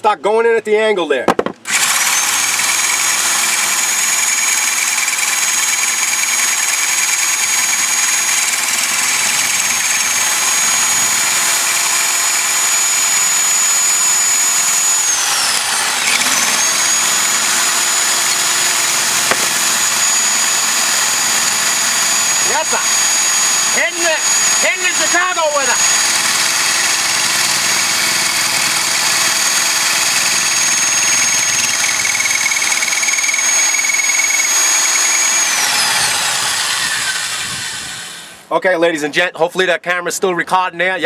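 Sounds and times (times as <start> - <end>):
hammer drill boring into concrete: 1.3 - 38.5.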